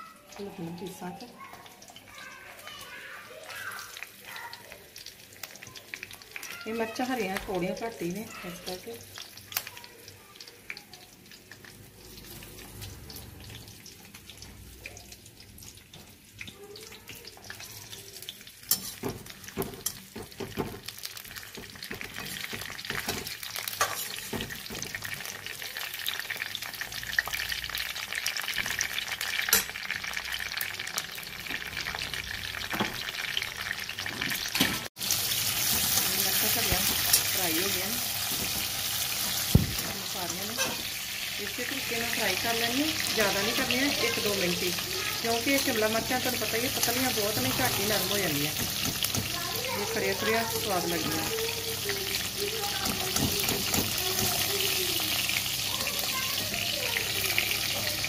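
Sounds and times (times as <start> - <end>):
vegetables sizzling in hot oil: 0.0 - 58.0
metal spatula scraping a pan: 18.6 - 20.1, 40.4 - 41.0.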